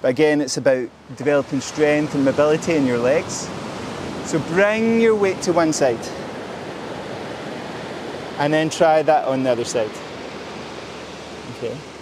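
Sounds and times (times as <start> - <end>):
ocean surf washing onto beach: 0.0 - 12.0.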